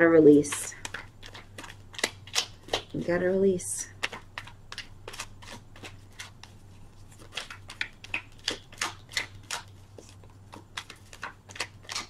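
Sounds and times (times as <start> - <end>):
cards clicking and snapping: 0.6 - 3.0, 3.9 - 12.0.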